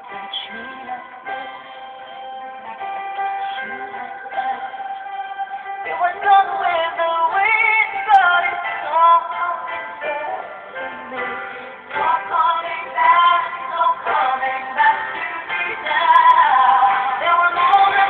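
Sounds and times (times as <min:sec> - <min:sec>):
woman singing a ballad: 0:00.0 - 0:18.0.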